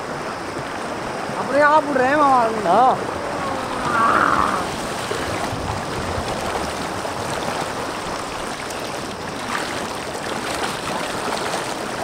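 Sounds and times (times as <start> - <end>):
river rushing over rocks: 0.0 - 12.0.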